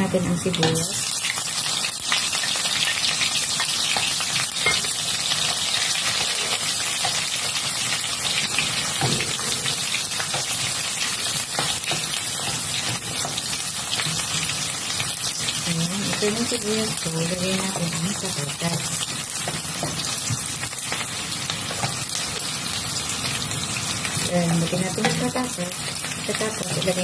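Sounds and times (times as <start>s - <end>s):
onions sizzling in hot oil: 0.0s - 27.0s.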